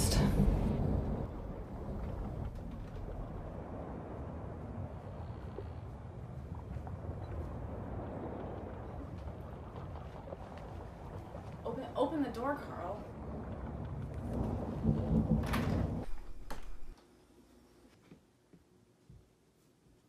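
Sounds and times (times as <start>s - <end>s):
motorboat engine rumbling: 0.0s - 17.0s.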